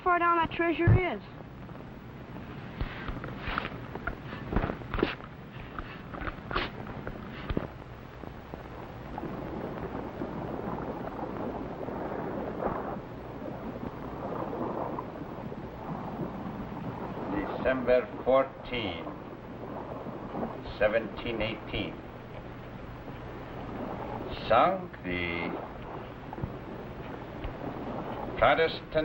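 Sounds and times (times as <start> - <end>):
steady rushing noise: 1.4 - 29.0.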